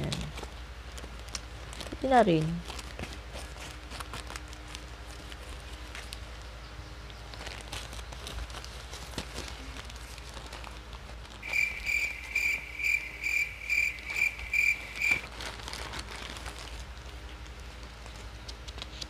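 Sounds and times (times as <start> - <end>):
plastic bag rustling: 0.0 - 6.4, 7.2 - 19.0
short high chirps: 11.4 - 15.2.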